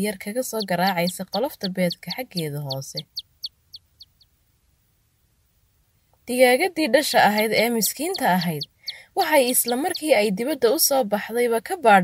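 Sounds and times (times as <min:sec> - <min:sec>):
chick cheeping: 0:00.6 - 0:04.2, 0:07.5 - 0:10.3.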